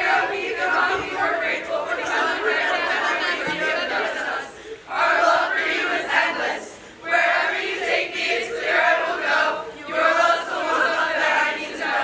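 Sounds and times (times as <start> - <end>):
group singing in unison: 0.0 - 12.0.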